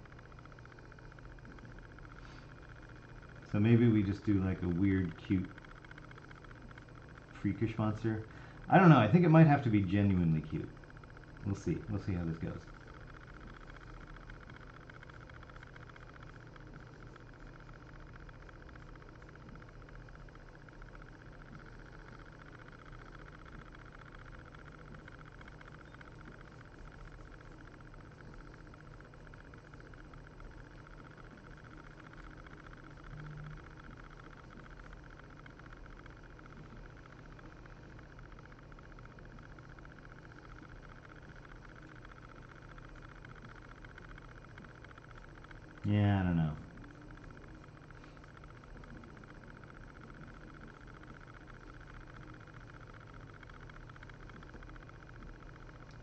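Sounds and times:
computer fan humming: 0.0 - 56.0.

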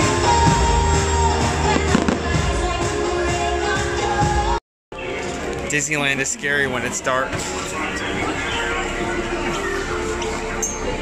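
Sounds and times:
loud music playing: 0.0 - 11.0
fireworks bursting: 1.7 - 2.7.

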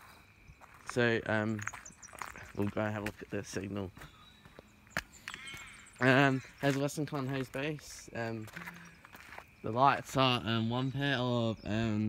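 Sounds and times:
footstep on gravel: 0.0 - 10.2.

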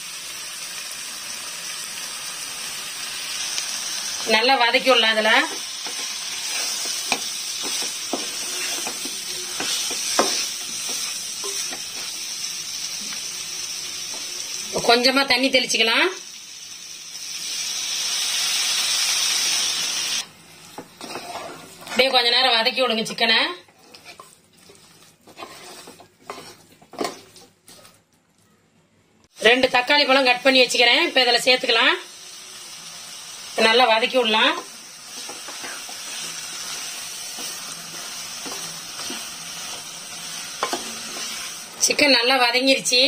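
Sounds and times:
food sizzling in a pot: 0.0 - 27.9, 29.3 - 43.0
spatula scraping a pan: 5.5 - 12.2, 21.0 - 22.1, 23.7 - 27.9, 35.1 - 41.8.

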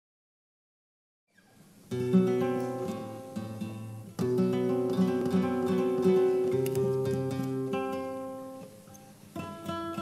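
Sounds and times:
flamenco guitar strumming: 1.4 - 10.0.

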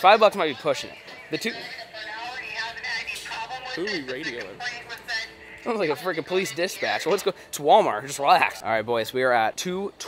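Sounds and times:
announcement over loudspeaker: 0.0 - 7.4
music playing: 0.0 - 8.6.

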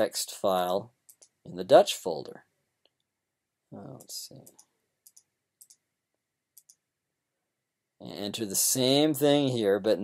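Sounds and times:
computer mouse clicks: 1.0 - 1.4, 4.0 - 5.8, 6.6 - 6.8.

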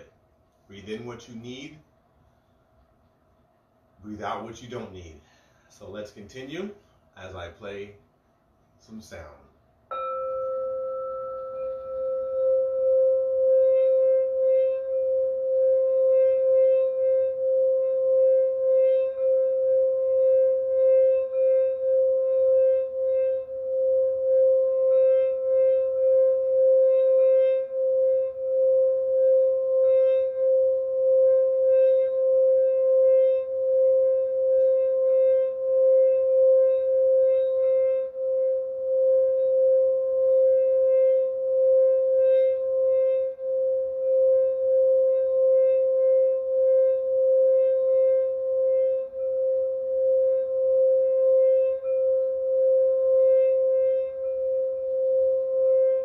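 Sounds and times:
singing bowl ringing hum: 0.0 - 56.0
high overtone: 4.0 - 8.0, 8.8 - 56.0.

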